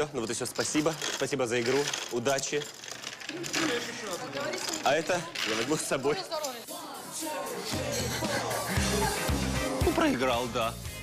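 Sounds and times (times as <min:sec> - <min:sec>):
man talking: 0:09.7 - 0:10.8.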